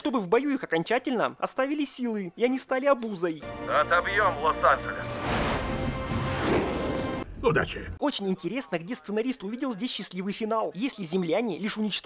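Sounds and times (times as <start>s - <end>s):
film soundtrack music: 3.4s - 8.0s
battle sound effects: 5.0s - 7.3s.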